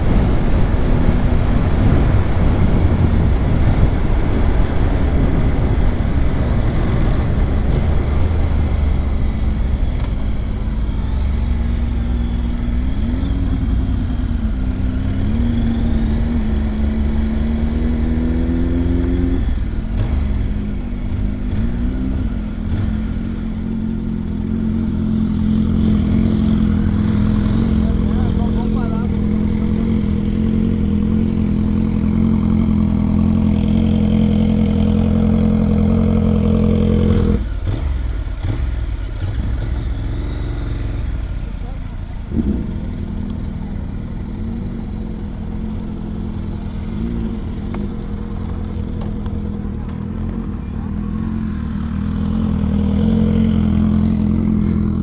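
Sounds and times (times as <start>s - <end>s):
wind rumbling on microphone: 0.0s - 11.4s
motorcycle engine running: 0.0s - 55.0s.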